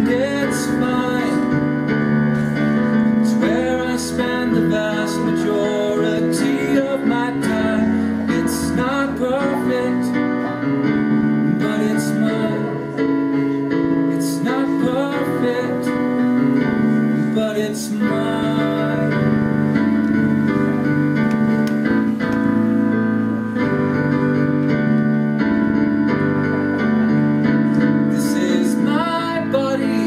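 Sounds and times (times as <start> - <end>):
man singing: 0.0 - 2.2, 3.0 - 19.9, 27.8 - 30.0
keyboard piano chords: 0.0 - 30.0.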